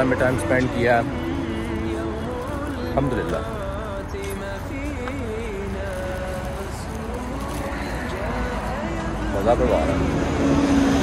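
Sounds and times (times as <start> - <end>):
person singing unaccompanied: 0.0 - 10.2
road traffic rumble: 0.0 - 11.0.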